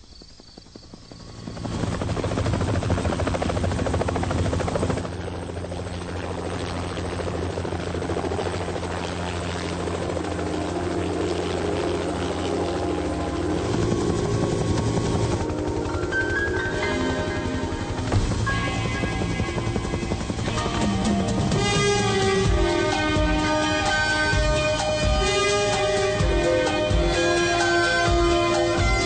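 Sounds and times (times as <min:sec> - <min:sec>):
helicopter rotor beating: 0:00.0 - 0:29.0
low engine drone: 0:08.2 - 0:29.0.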